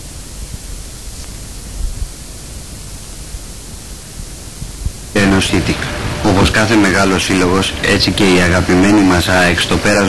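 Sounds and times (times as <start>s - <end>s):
cassette tape hiss: 0.0s - 10.0s
low rumble: 4.6s - 9.9s.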